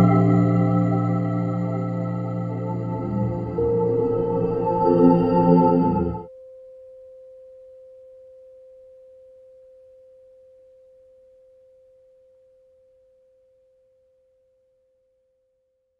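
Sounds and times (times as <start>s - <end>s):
tuning fork ringing: 0.0s - 12.0s.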